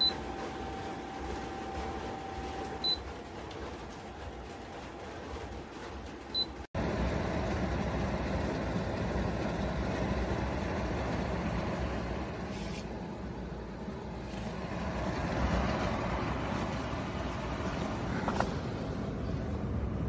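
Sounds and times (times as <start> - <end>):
air purifier fan whooshing: 0.0 - 20.0.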